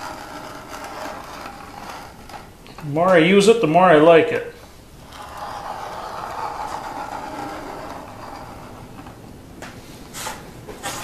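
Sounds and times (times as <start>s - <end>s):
knife scraping along steel square: 0.0s - 2.5s, 5.0s - 9.2s.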